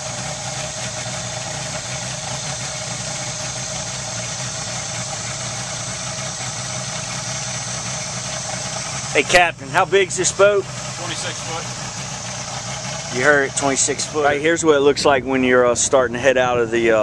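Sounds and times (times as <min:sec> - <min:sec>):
outboard motor running: 0:00.0 - 0:17.0.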